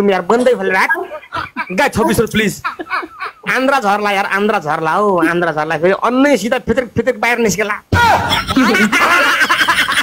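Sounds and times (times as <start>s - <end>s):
people laughing and shouting: 0.5s - 3.9s, 7.9s - 10.0s.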